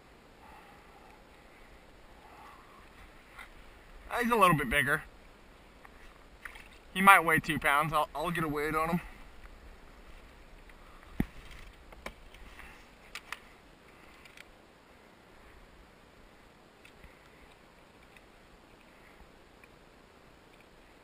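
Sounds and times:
low steady hiss: 0.0s - 21.0s.

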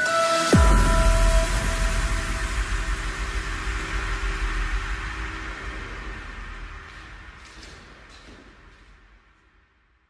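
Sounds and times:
electronic workout music: 0.0s - 7.4s.

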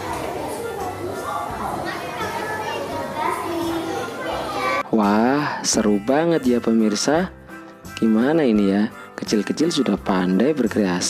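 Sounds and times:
girl speaking into microphone: 0.0s - 4.8s.

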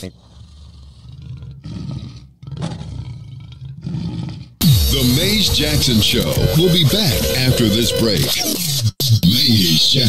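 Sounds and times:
deep lion roar: 0.0s - 4.6s.

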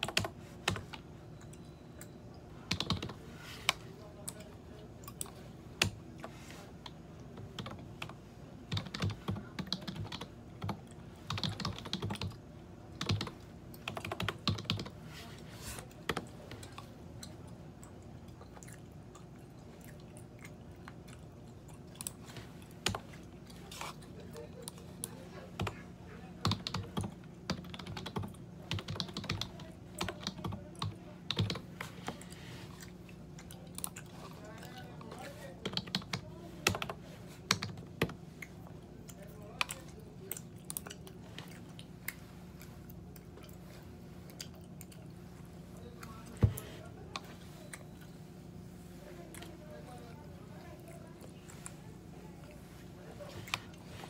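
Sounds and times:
computer keyboard typing: 0.0s - 15.0s, 16.0s - 17.4s, 21.9s - 23.6s, 24.6s - 32.3s, 34.6s - 38.2s
steady low hum: 0.0s - 54.0s.

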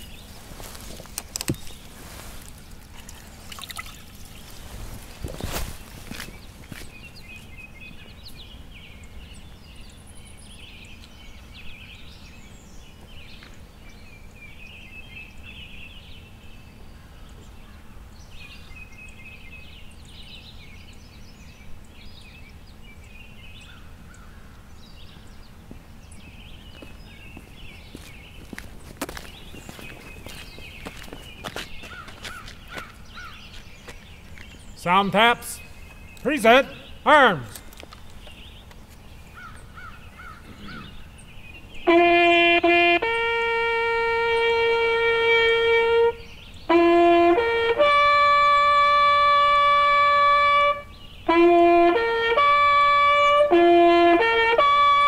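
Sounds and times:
songbirds singing: 0.0s - 55.0s.

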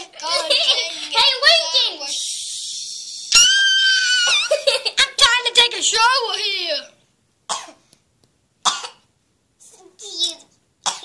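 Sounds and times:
breathy hissing: 2.0s - 3.3s
child's high-pitched squeal: 2.1s - 4.5s.

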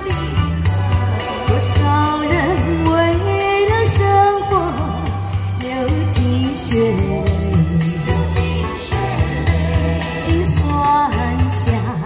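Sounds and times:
backing track with bass line: 0.0s - 12.0s
woman singing a slow pop song: 0.0s - 12.0s.

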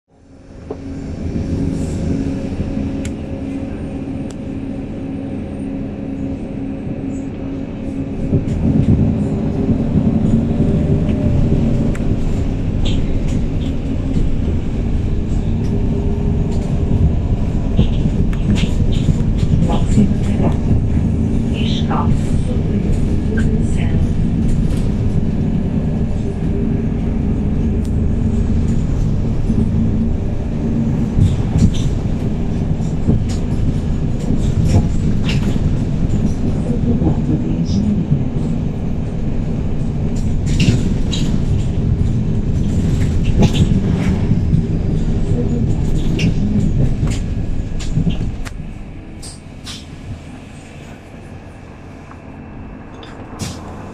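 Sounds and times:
bus engine drone: 0.1s - 53.9s
bodywork rattles and clicks: 8.3s - 49.9s.

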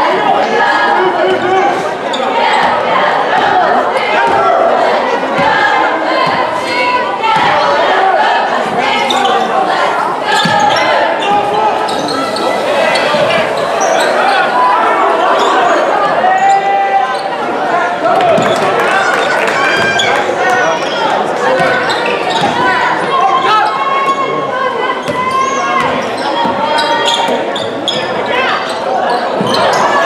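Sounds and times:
voices of players and spectators: 0.0s - 30.0s.

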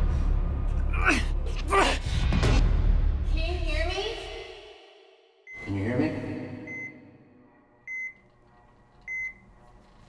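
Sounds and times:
patient monitor beeping: 5.5s - 5.8s, 6.6s - 7.3s, 7.9s - 8.4s, 9.0s - 9.6s.

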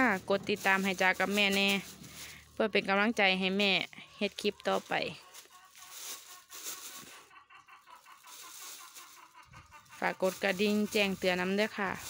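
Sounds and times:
plastic bag crinkling: 0.0s - 2.6s, 4.3s - 7.3s, 7.9s - 12.0s.

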